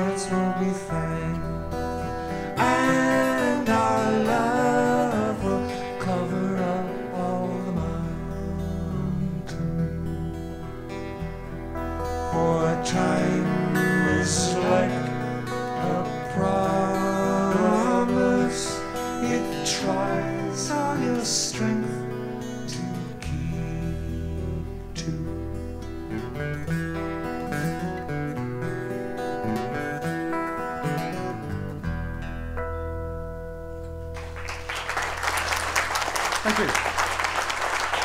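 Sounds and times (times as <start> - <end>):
man singing: 0.0 - 10.3, 12.2 - 26.0
acoustic guitars strumming: 0.0 - 38.0.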